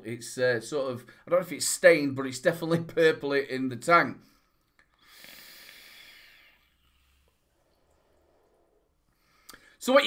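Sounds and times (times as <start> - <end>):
faint breathy exhale: 4.3 - 9.8.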